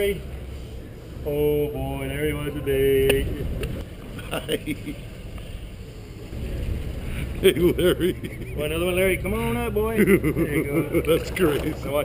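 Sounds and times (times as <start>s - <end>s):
boat engine rumble: 0.0s - 12.0s.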